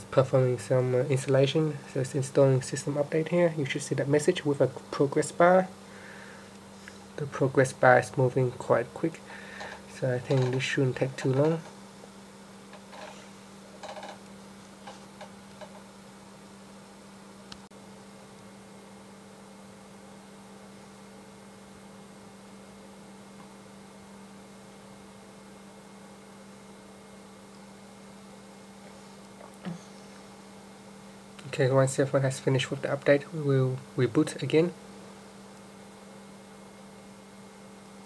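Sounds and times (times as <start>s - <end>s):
low electrical hum: 0.0s - 38.0s.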